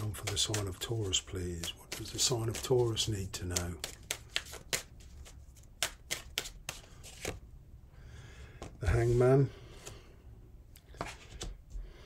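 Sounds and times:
cards being shuffled: 0.0s - 7.4s.

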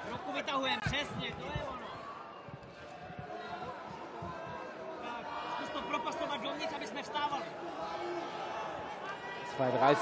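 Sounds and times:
crowd chatter and shouts: 0.0s - 10.0s.

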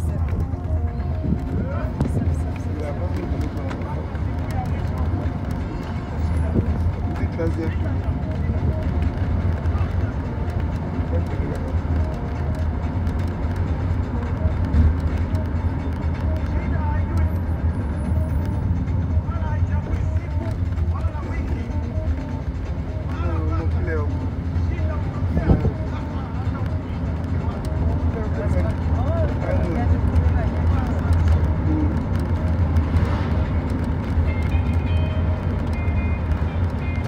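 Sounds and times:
people talking: 0.0s - 12.5s, 14.1s - 33.5s
bus engine and road rumble: 0.0s - 37.0s.

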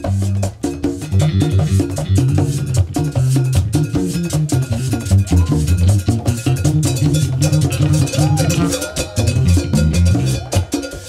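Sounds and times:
electric bass line: 0.0s - 10.5s
djembe and conga drumming: 0.0s - 11.0s
metallic percussion: 0.0s - 11.0s.

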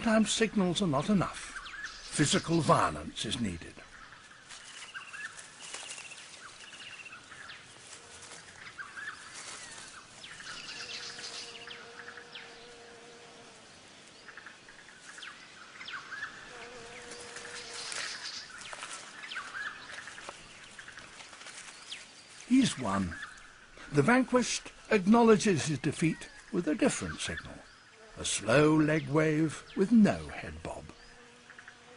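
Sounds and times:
bird chirps and trills: 0.0s - 13.1s, 14.1s - 31.9s
rustling in dry leaves: 3.8s - 26.6s.

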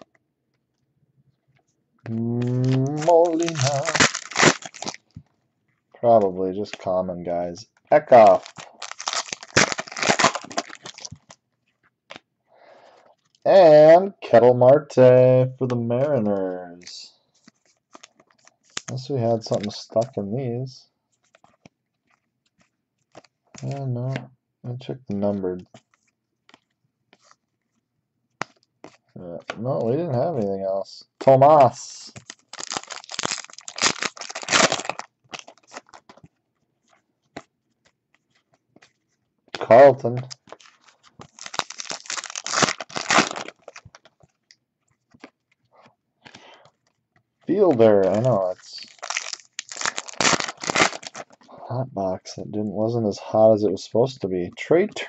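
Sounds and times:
foil wrapper tearing and crinkling: 2.4s - 5.2s, 8.0s - 11.4s, 17.5s - 19.6s, 31.8s - 36.2s, 39.7s - 45.4s, 47.6s - 51.5s
trading cards flipped by hand: 21.2s - 23.7s, 25.7s - 29.1s, 32.1s - 39.6s, 40.2s - 47.0s.

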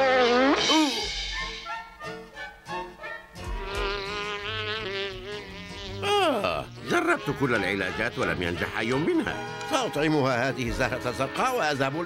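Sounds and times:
cartoon fly buzzing: 0.0s - 1.6s, 3.4s - 9.6s.

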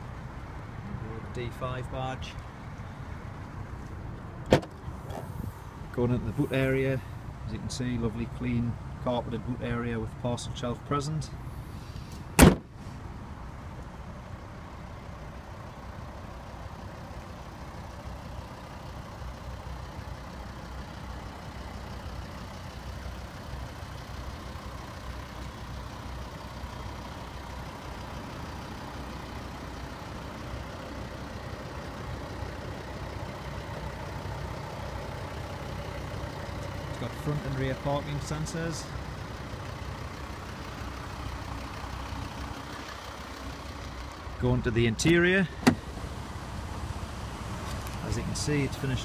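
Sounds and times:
diesel engine idling: 0.0s - 49.0s.

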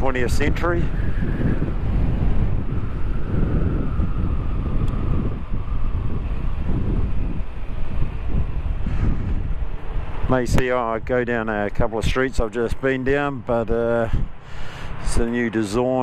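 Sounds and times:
wind rushing over microphone: 0.0s - 16.0s.

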